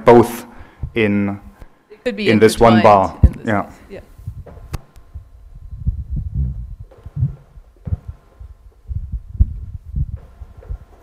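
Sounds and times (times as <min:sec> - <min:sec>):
microphone handling thumps: 0:04.1 - 0:11.0.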